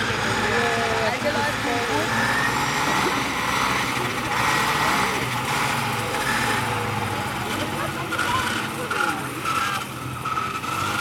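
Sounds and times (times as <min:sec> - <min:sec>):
faint voices: 0:00.0 - 0:10.4
small engine running: 0:00.0 - 0:11.0.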